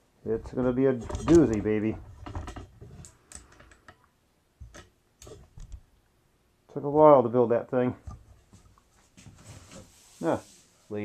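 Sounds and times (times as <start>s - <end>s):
light irregular clicks and taps: 1.1s - 5.9s.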